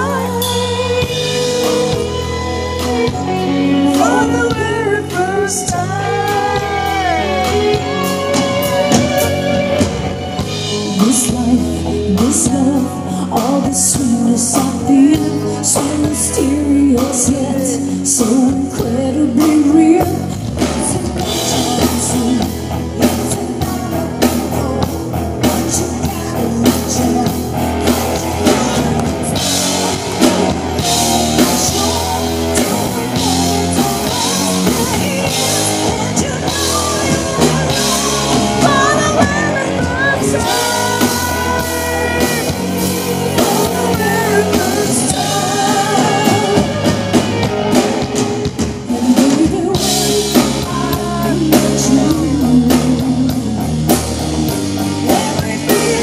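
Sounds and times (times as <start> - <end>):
live rock band playing: 0.0 - 56.0
woman singing lead: 0.0 - 56.0.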